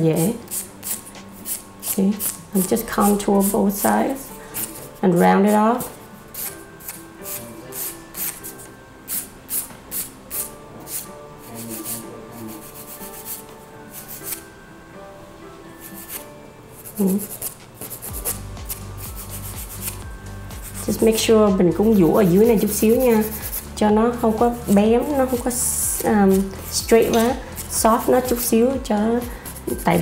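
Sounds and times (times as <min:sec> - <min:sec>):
soft background music: 0:00.0 - 0:30.0
nail file rasping: 0:00.5 - 0:04.9, 0:06.3 - 0:14.4, 0:15.9 - 0:16.2, 0:16.8 - 0:20.0, 0:20.6 - 0:21.0, 0:21.8 - 0:23.8, 0:26.0 - 0:28.6, 0:29.2 - 0:30.0.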